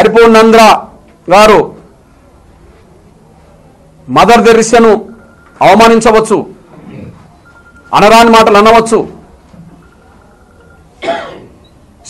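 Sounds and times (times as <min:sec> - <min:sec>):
speech: 0:00.0 - 0:01.8, 0:04.1 - 0:06.6, 0:07.9 - 0:09.2
man clearing throat: 0:06.8 - 0:07.3, 0:11.0 - 0:11.6.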